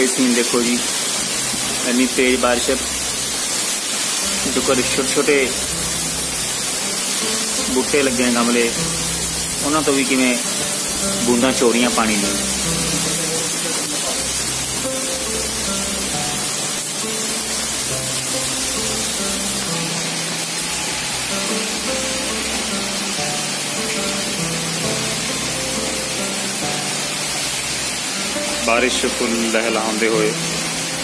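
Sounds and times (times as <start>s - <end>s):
heavy rain hissing: 0.0s - 31.0s
melody over bass line: 14.4s - 31.0s.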